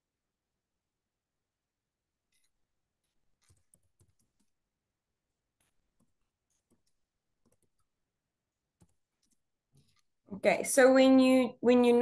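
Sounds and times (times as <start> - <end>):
typing on computer keyboard: 3.4 - 4.6, 6.0 - 7.9.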